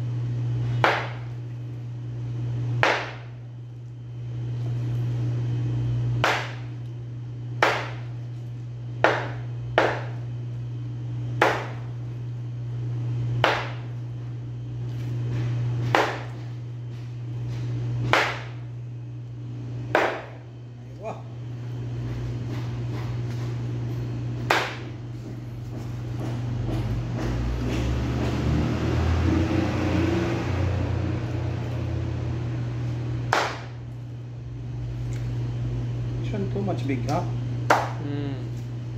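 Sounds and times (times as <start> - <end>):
steady low hum: 0.0 - 38.9
knife chopping on cutting board: 0.8 - 1.3, 2.8 - 3.3, 7.6 - 8.1, 9.0 - 10.2, 11.4 - 11.9, 13.4 - 13.9, 15.3 - 16.5, 19.9 - 20.4, 24.4 - 27.9.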